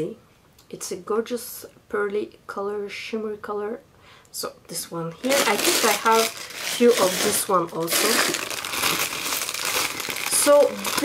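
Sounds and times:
packaging crinkling: 5.1 - 11.0.

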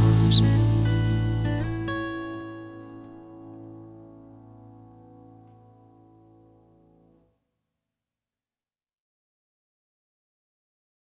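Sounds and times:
acoustic guitar chord ringing: 0.0 - 7.3.

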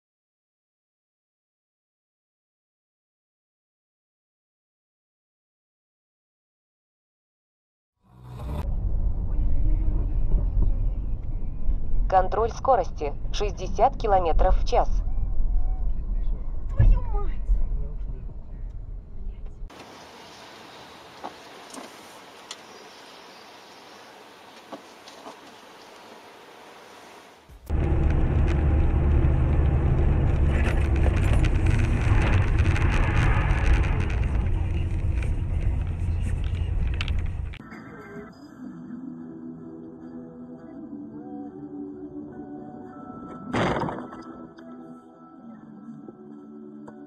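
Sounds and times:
car road and engine noise: 8.1 - 13.6, 15.0 - 37.6.

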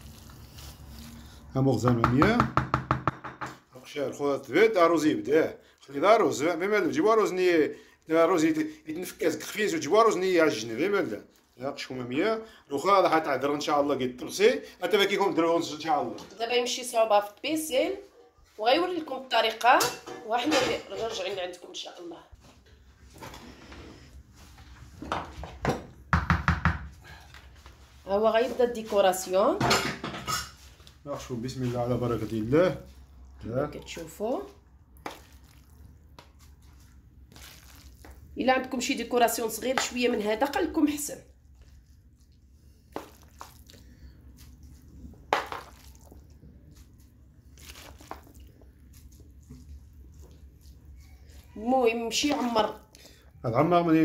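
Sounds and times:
rapid sharp knocks: 1.9 - 3.6.

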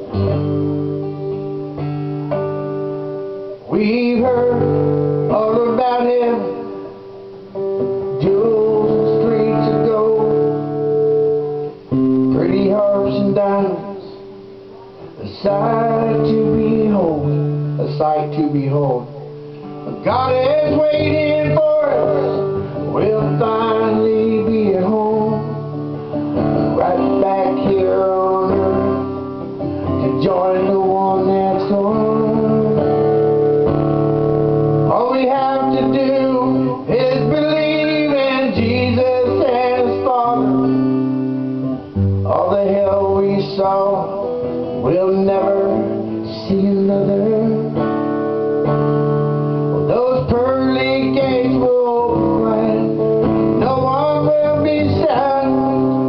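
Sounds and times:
strummed acoustic guitar: 0.0 - 56.0
man singing: 3.4 - 33.7, 34.6 - 48.8, 49.7 - 56.0.

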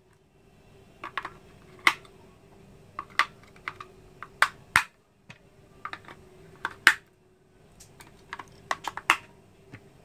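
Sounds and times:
faint steady hum: 0.0 - 10.0
plastic clicks and clacks: 1.0 - 2.1, 3.0 - 7.0, 7.8 - 9.9.

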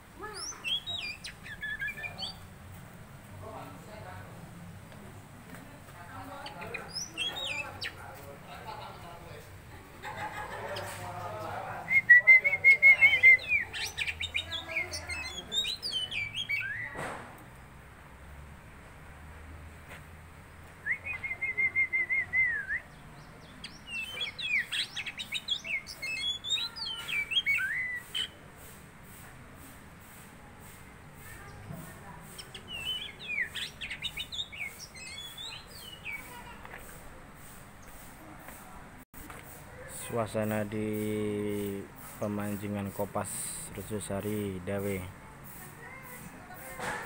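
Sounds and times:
bird singing whistled notes: 0.3 - 2.4, 6.5 - 8.0, 11.8 - 17.0, 20.8 - 28.4, 32.4 - 36.3.

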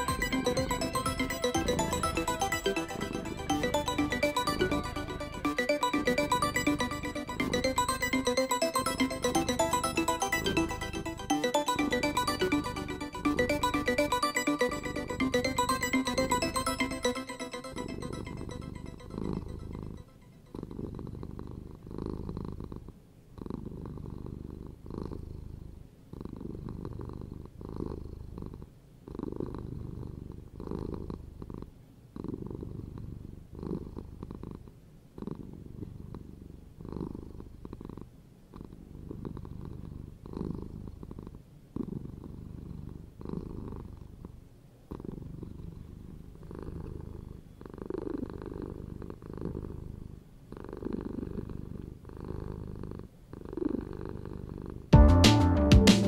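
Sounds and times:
cat purring: 6.2 - 8.2, 18.4 - 54.9.

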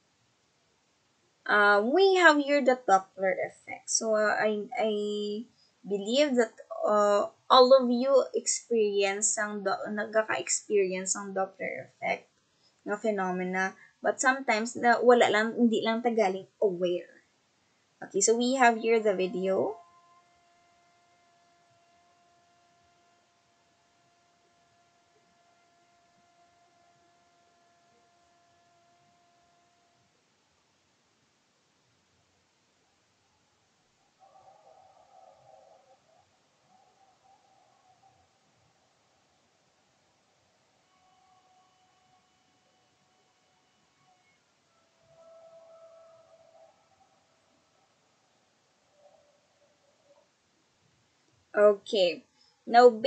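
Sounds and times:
faint electrical hum: 0.0 - 53.0
faint steady tone: 0.0 - 53.0
light hiss: 4.2 - 15.3, 16.2 - 53.0.

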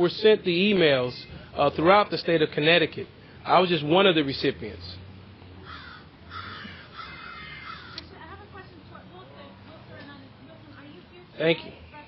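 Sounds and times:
bird calling: 5.6 - 8.1.

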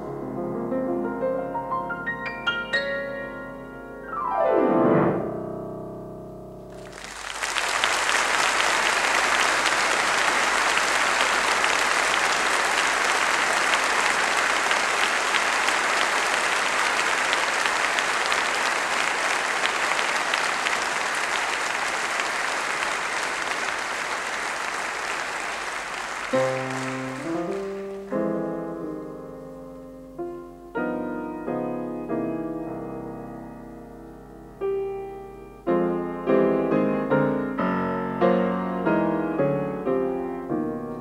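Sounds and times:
solo piano: 0.0 - 7.2, 26.3 - 41.0
audience applauding: 6.7 - 28.5.

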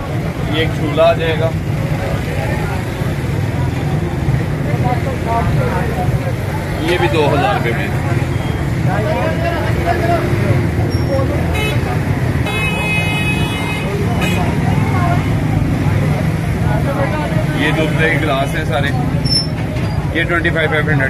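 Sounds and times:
people talking: 0.0 - 21.0
traffic rumble: 0.0 - 21.0
vehicle horn: 11.5 - 14.6.

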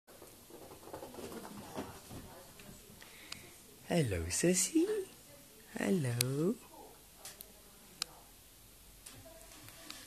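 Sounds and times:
soft patter and scuffling: 0.1 - 3.8, 9.0 - 10.0.

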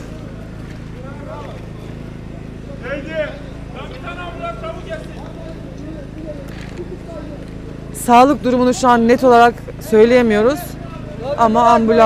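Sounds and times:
crowd voices calling: 0.0 - 12.0
vehicle engine idling: 0.0 - 12.0.

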